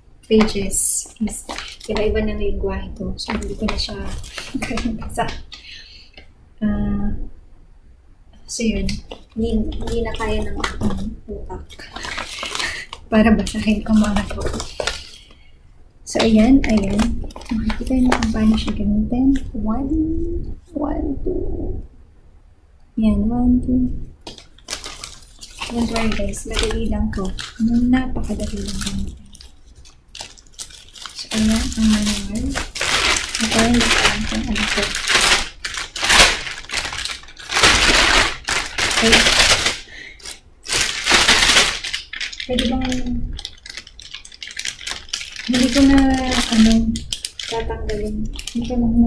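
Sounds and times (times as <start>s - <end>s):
plastic packaging crinkling: 0.2s - 6.2s, 8.6s - 15.5s, 16.1s - 19.5s, 24.2s - 48.9s
paper booklet rustling: 0.3s - 2.4s, 3.2s - 5.8s, 8.7s - 15.4s, 16.1s - 19.4s, 24.2s - 48.8s.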